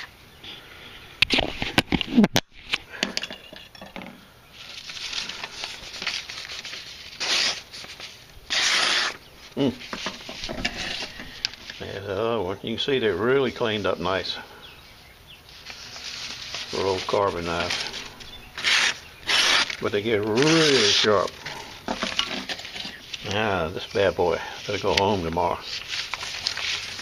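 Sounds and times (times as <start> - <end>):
paper rustling: 4.6 - 12.0, 15.5 - 27.0
knife slicing paper: 4.7 - 9.2, 15.6 - 21.5, 25.6 - 27.0.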